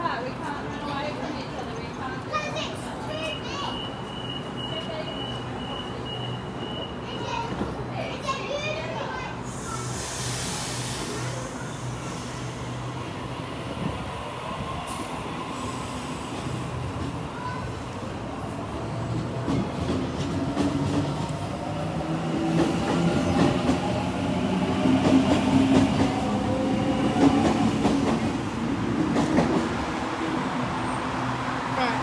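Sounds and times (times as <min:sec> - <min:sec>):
voices of passengers: 0:00.0 - 0:32.0
train pulling out: 0:09.3 - 0:32.0.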